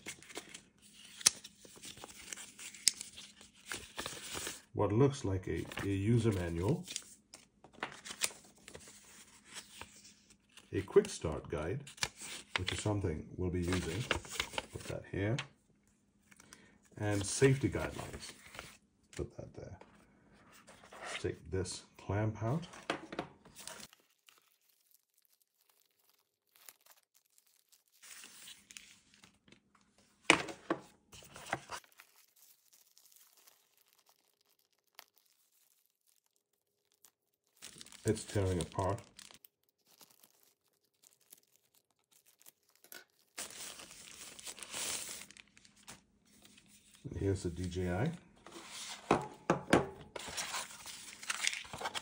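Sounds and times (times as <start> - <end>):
plastic wrap crinkling and tearing: 0.0 - 4.7, 5.5 - 11.1, 23.5 - 29.8, 31.2 - 47.0, 50.1 - 52.0.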